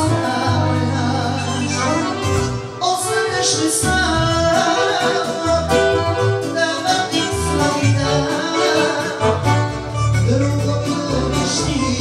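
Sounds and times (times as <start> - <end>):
accordion: 0.0 - 12.0
electronic keyboard: 0.0 - 12.0.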